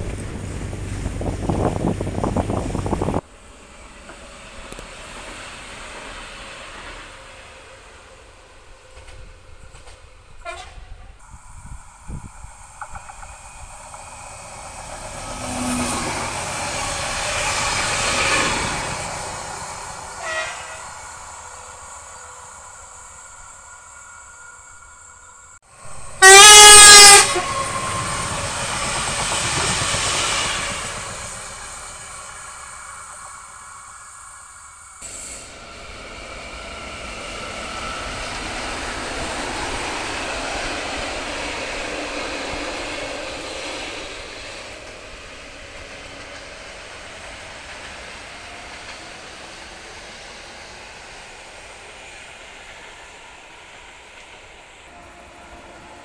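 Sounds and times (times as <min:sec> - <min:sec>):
trains running on rails: 0:00.0 - 0:56.0
train horn blast: 0:10.4 - 0:11.1, 0:20.2 - 0:21.0, 0:26.1 - 0:28.2.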